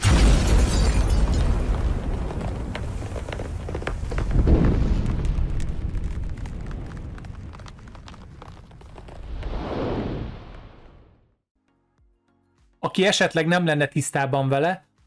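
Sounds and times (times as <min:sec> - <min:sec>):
deep rumbling boom: 0:01.2 - 0:11.2
crackling pops: 0:01.6 - 0:11.0.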